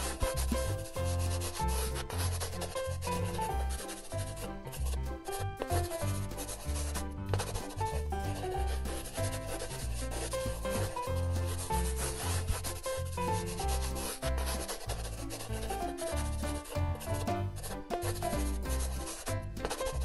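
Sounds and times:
background music with bass line: 0:00.0 - 0:20.0
paintbrush scrubbing on paper: 0:00.0 - 0:20.0.

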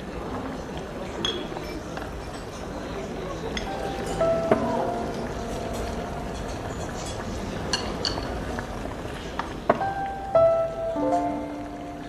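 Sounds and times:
drinking glass clinking: 0:03.5 - 0:08.4.

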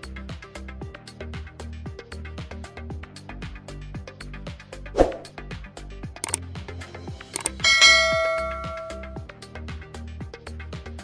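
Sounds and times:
background music with steady beat: 0:00.0 - 0:11.0
thump sound effect: 0:05.0 - 0:05.3
bell ding: 0:07.4 - 0:09.2
clicks: 0:07.4 - 0:09.2.

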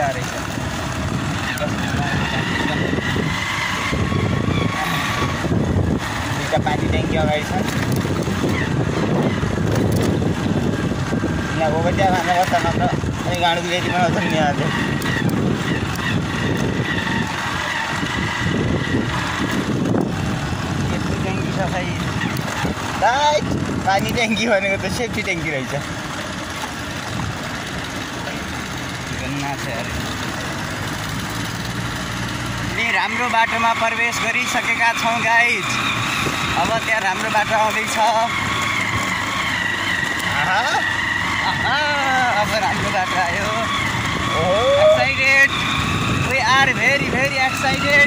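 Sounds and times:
motorcycle engine running: 0:00.0 - 0:48.0
tyre noise on dirt road: 0:00.0 - 0:48.0
wind noise on microphone: 0:00.5 - 0:24.3, 0:36.0 - 0:37.0, 0:41.2 - 0:48.0.

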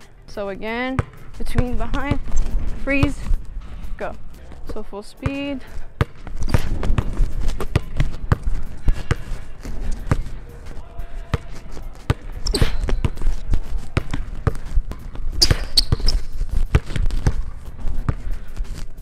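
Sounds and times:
sneaker squeaks: 0:06.0 - 0:08.4, 0:11.3 - 0:13.4, 0:14.0 - 0:17.6
basketball bouncing on hardwood: 0:15.4 - 0:17.5.

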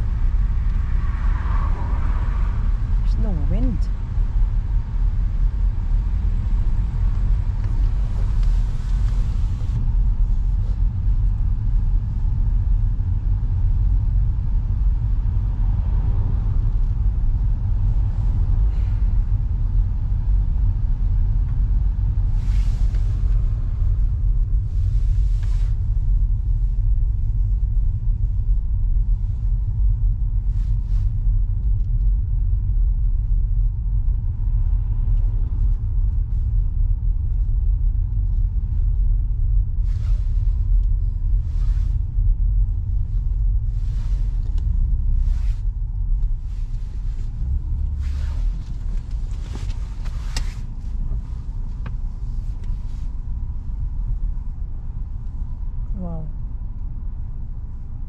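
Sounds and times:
car driving slowly: 0:00.0 - 0:58.0.

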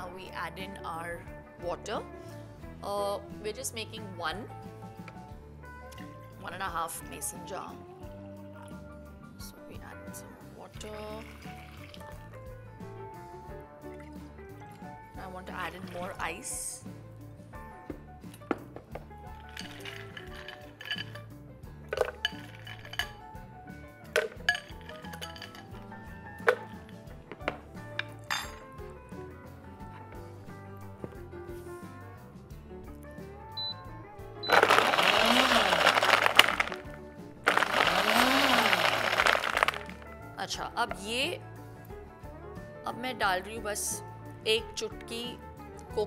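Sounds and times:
ice cubes clinking into jar: 0:19.4 - 0:21.3, 0:21.9 - 0:23.2, 0:24.2 - 0:25.8, 0:34.4 - 0:40.0
blender blending ice: 0:19.6 - 0:21.0, 0:34.4 - 0:40.0.

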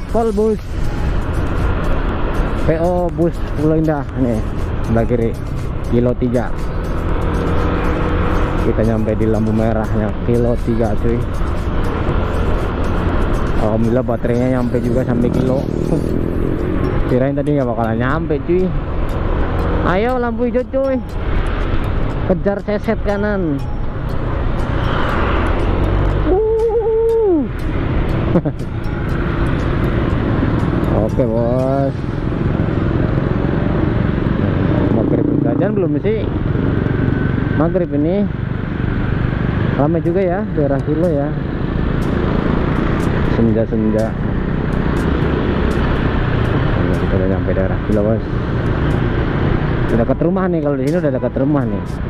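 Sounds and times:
wind and road noise: 0:00.0 - 0:52.0.

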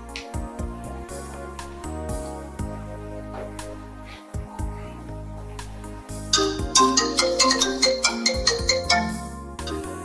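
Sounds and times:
phone ringtone melody: 0:06.3 - 0:09.8.

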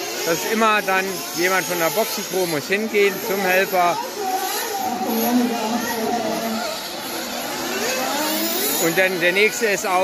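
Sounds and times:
model car engine revving: 0:00.0 - 0:10.0.

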